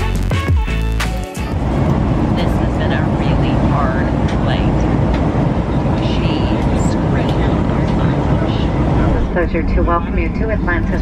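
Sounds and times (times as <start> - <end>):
jet engine roar in cabin: 1.4 - 11.0
faint voices: 5.7 - 11.0.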